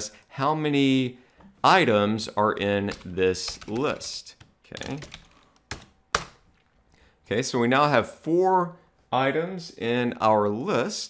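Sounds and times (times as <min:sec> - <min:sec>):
keyboard typing: 0:02.8 - 0:06.7.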